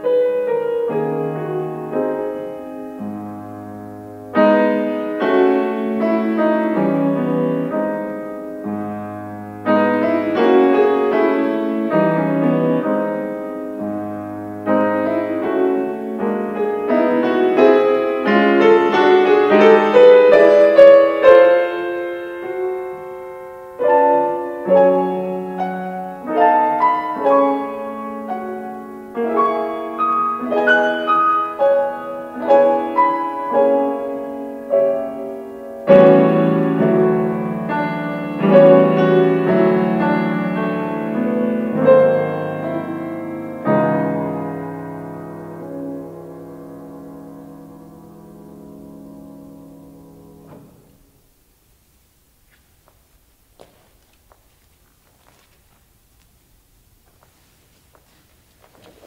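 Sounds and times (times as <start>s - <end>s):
solo piano minuet: 0.0s - 59.0s.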